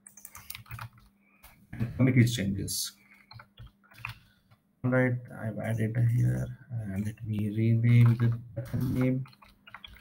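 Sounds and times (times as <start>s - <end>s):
computer keyboard typing: 0.0s - 1.1s, 3.1s - 4.3s, 7.0s - 10.0s.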